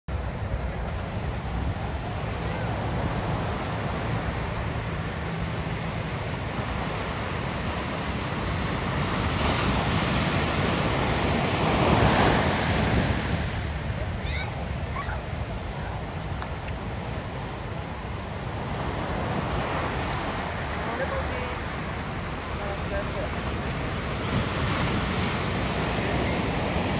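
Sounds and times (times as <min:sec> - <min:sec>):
ocean surf breaking: 0:00.1 - 0:26.9.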